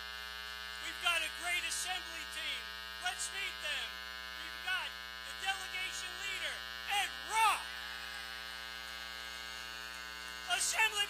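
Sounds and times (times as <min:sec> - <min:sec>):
electrical mains hum: 0:00.0 - 0:11.0
voices cheering: 0:06.9 - 0:08.6.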